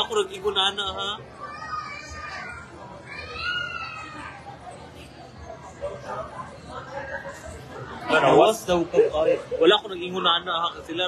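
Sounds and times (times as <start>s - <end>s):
background chatter of voices: 0.0s - 11.0s.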